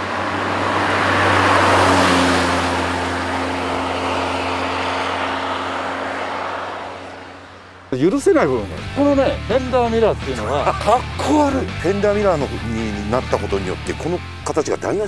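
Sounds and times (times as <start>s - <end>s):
car driving past: 0.0s - 9.0s.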